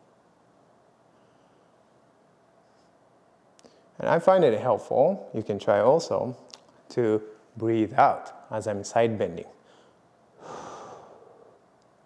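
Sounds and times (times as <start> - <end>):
man exhaling softly: 9.7 - 11.6.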